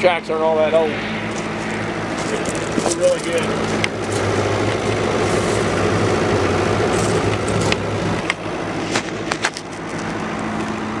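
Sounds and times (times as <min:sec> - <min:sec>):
diesel engine idling: 0:00.0 - 0:11.0
footsteps on gravel: 0:01.3 - 0:06.0, 0:06.8 - 0:08.0.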